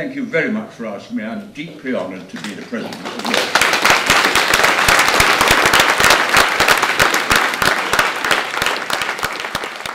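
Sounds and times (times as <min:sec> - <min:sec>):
audience applauding: 0:02.8 - 0:09.9.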